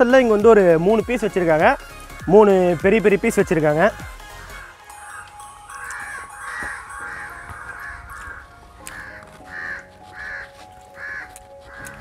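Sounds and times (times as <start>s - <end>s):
crow cawing: 5.4s - 12.0s.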